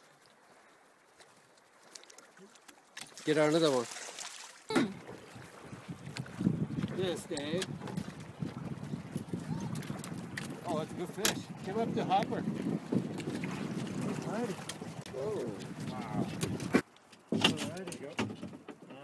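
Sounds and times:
wind: 0.0 - 19.0
river water rushing: 2.4 - 5.7
voices: 14.2 - 16.4.

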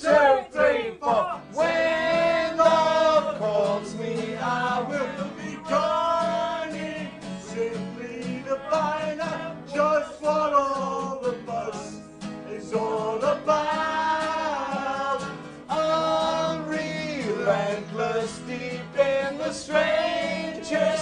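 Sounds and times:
people singing along: 0.0 - 21.0
man singing: 0.5 - 21.0
acoustic guitar strumming: 0.9 - 21.0.

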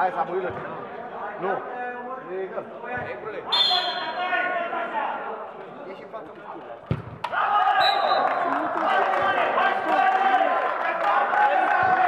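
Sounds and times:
football kicked with dull thud: 6.9 - 7.2.

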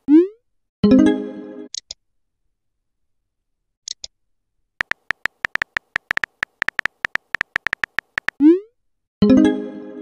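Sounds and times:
electronic keyboard clicks: 4.8 - 8.4.

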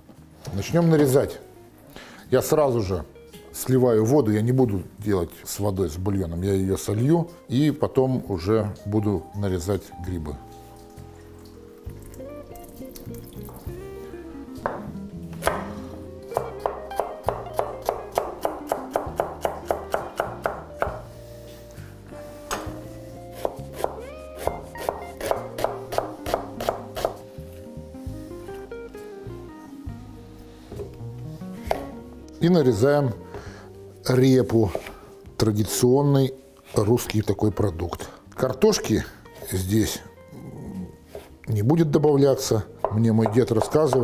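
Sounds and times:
background music: 0.0 - 44.0
knife chopping on wooden board: 14.6 - 15.8, 16.4 - 21.1, 23.4 - 27.2, 31.6 - 32.0.

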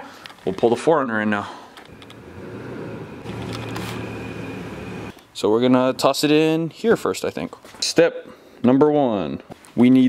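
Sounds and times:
steady hum: 1.8 - 5.1
car engine low rumble: 1.9 - 5.1.

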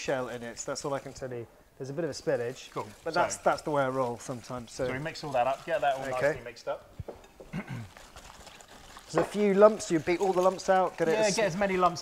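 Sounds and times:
hand whisk beating batter: 7.3 - 12.0.

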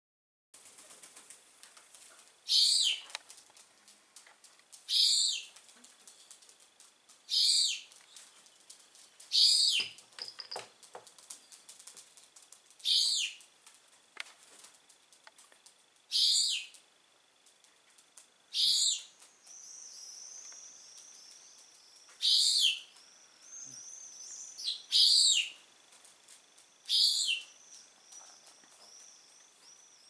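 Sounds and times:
pigeon wings flapping: 0.6 - 2.4, 10.7 - 12.9.

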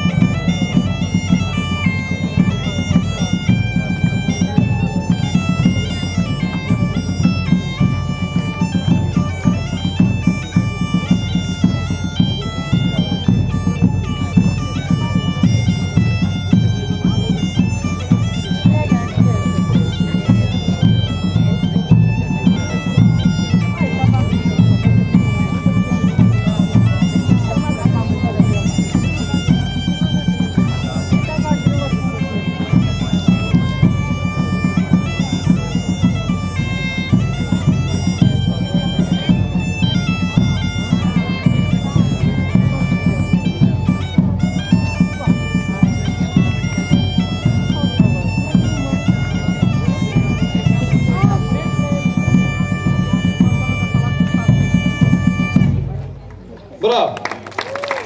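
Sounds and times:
large drum beating: 0.0 - 56.5
bagpipes playing a dance tune: 0.0 - 57.0.

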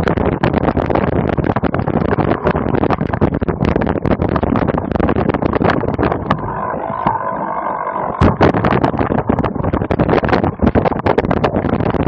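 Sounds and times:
loud thumps: 8.1 - 12.0.

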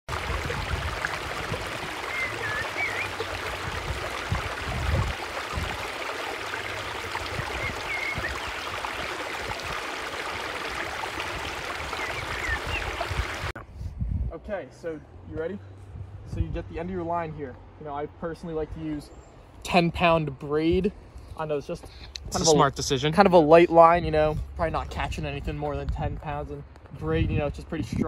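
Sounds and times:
wind on microphone: 0.1 - 6.0, 7.1 - 9.9, 10.8 - 14.4, 15.9 - 16.8, 24.0 - 28.0
lake water: 0.1 - 13.6
bird chirps: 2.0 - 3.3, 7.4 - 8.8, 11.9 - 13.1.

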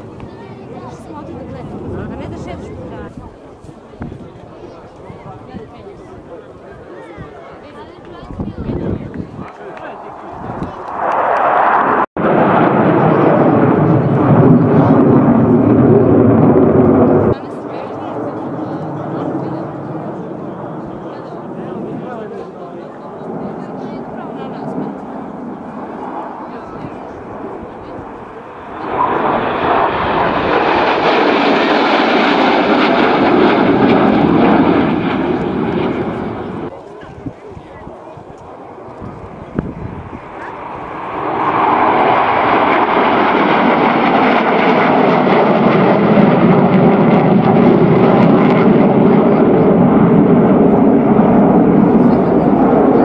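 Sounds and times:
loud jet noise overhead: 0.0 - 53.0.

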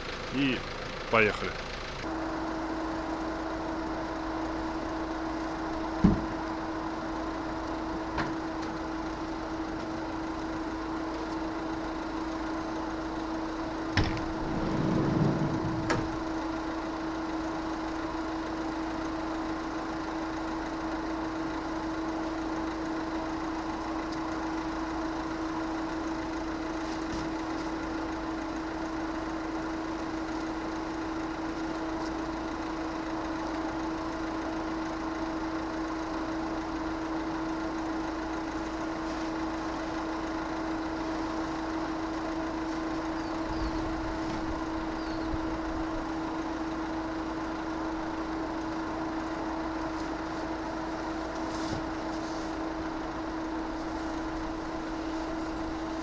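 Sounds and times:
engine idling: 0.0 - 56.0
low rumble: 13.8 - 17.6.

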